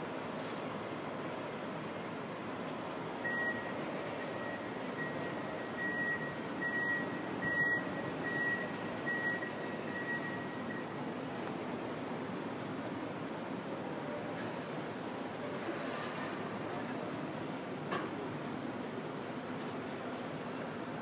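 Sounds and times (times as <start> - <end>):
city ambience: 0.0 - 21.0.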